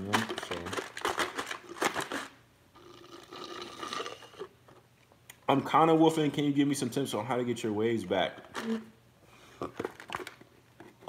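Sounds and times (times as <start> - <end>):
slurping through a straw: 2.8 - 4.6.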